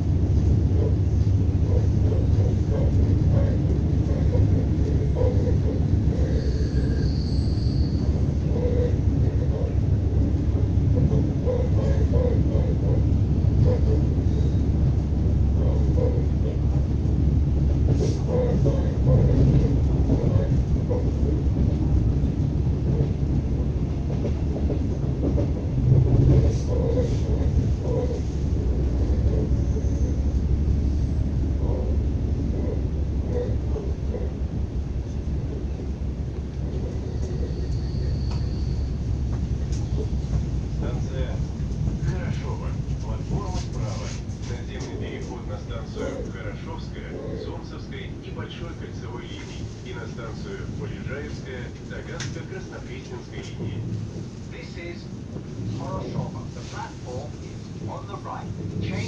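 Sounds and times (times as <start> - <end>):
train running gear rumble: 0.0 - 59.0.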